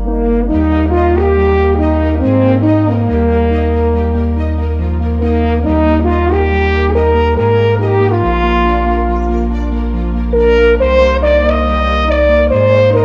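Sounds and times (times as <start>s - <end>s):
french horn melody: 0.0s - 13.0s
low held bass notes: 0.0s - 13.0s.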